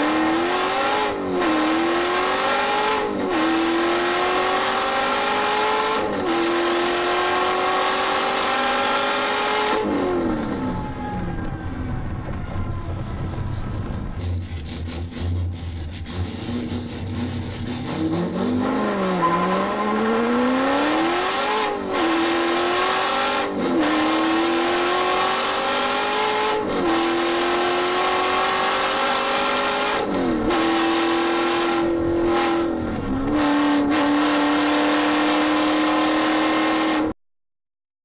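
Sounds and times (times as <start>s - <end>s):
car engine accelerating through gears: 0.0s - 37.2s.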